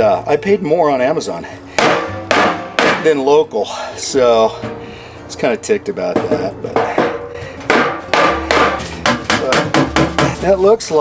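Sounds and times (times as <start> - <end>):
hammer striking wooden block: 1.8 - 3.2, 6.2 - 10.5.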